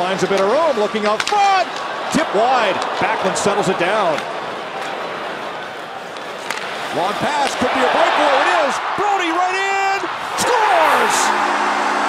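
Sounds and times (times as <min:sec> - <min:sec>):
stick hitting puck: 0:00.2 - 0:01.8, 0:06.1 - 0:07.6
crowd murmur: 0:01.7 - 0:06.9.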